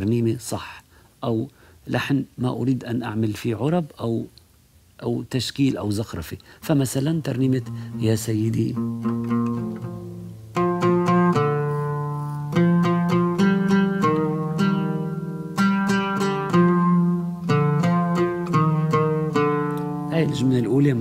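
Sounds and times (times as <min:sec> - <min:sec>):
oud plucked melody: 0:07.2 - 0:21.0.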